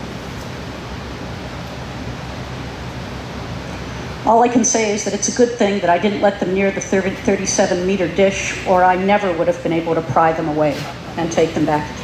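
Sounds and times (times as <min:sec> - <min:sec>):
low hum: 0:00.0 - 0:12.0
steady background noise: 0:00.0 - 0:12.0.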